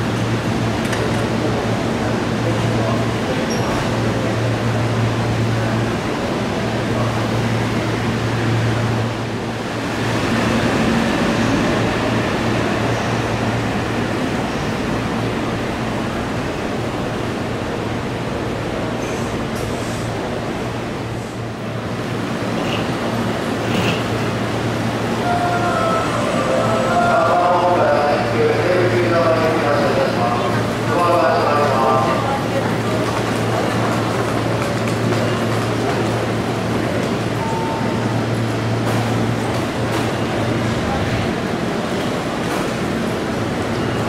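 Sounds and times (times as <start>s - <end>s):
train equipment hum and rumble: 0.0s - 44.0s
platform noise: 24.9s - 29.4s.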